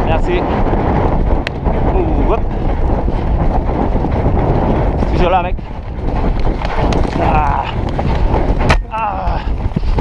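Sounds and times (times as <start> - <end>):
horse hooves on turf: 0.0 - 10.0
wind buffeting microphone: 0.0 - 10.0.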